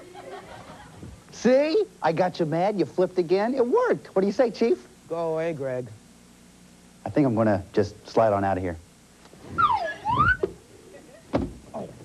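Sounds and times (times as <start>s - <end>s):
slide whistle swooping: 9.5s - 10.5s.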